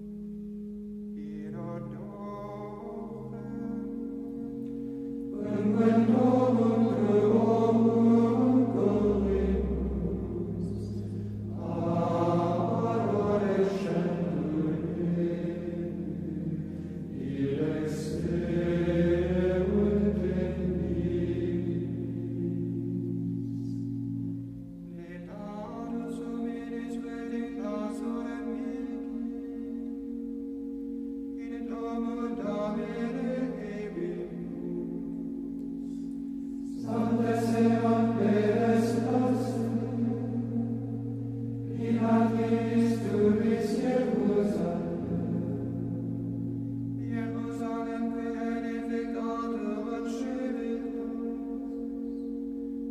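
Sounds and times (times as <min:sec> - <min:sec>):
low held drone: 0:00.0 - 0:52.9
steady low sustained tone: 0:00.0 - 0:52.9
choir singing slow chant: 0:05.0 - 0:24.2, 0:31.4 - 0:52.9.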